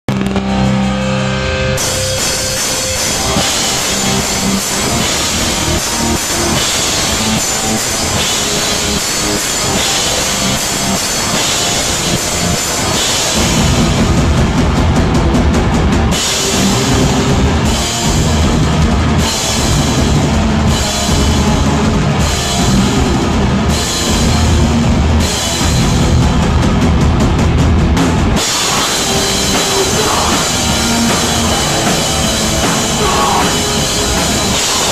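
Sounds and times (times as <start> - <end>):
punk band playing live: 0.0 - 34.9.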